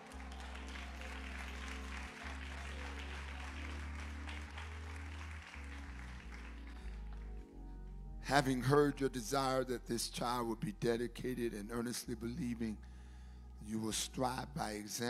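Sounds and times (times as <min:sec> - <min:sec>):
congregation applauding: 0:00.0 - 0:07.6
keyboard playing low chords: 0:00.0 - 0:15.0.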